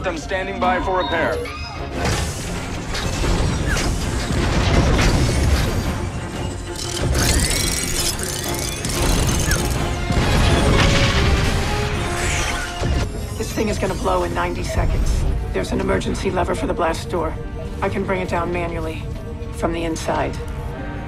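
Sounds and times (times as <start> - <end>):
film music score: 0.0 - 21.0
mechanical sound effects: 1.6 - 14.6.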